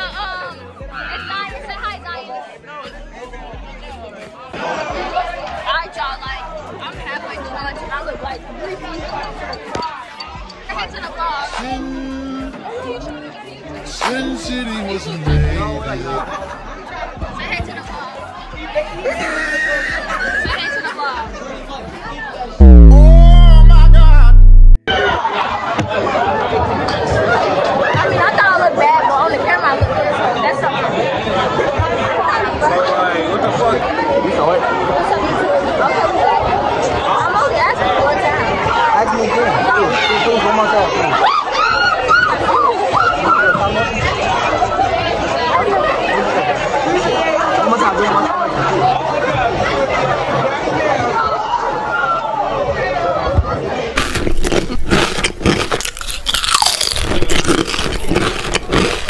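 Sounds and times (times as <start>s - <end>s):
teenagers chattering: 0.0s - 22.9s, 25.0s - 59.0s
teenagers talking: 0.0s - 24.4s
music playing: 13.8s - 16.7s, 22.6s - 24.8s.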